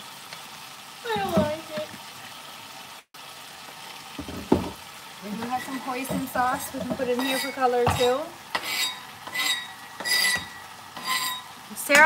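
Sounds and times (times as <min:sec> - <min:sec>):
knife scraping cutting board: 0:05.4 - 0:11.5.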